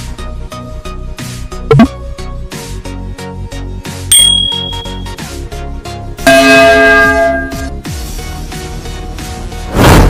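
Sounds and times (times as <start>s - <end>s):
electronic music beat: 1.7s - 1.9s
bell ringing: 4.1s - 5.2s, 6.3s - 7.8s
short high ding: 4.1s - 5.2s, 6.3s - 7.8s.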